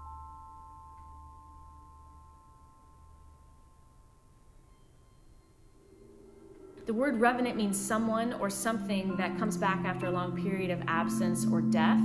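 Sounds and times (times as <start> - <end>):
metallic mallet percussion chord: 0.0 - 12.0.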